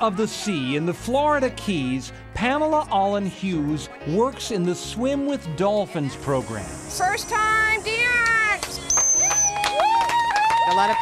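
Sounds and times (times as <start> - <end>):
dolphins squealing and whistling: 8.9 - 9.8.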